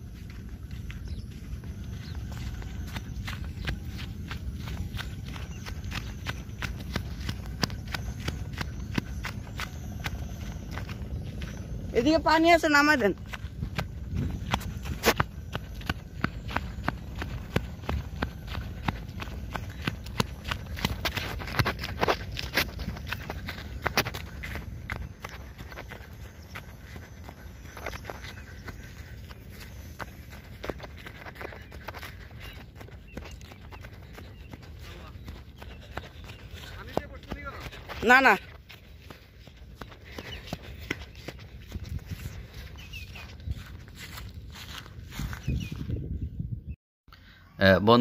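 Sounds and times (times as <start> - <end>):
wind rumble on microphone: 0.0 - 25.7, 40.1 - 46.8
footsteps on sandy ground: 0.0 - 46.4
steady low rumble: 13.0 - 37.9.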